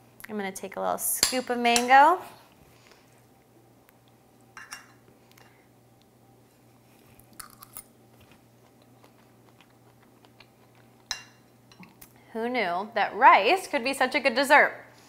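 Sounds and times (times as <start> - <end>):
faint steady hum: 0.0 - 15.0
chewing mouth sounds: 7.0 - 11.1.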